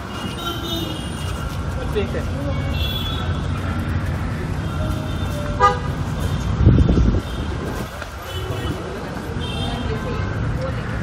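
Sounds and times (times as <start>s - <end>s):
street traffic rumble: 0.0s - 11.0s
vehicle horn toot: 4.9s - 6.0s.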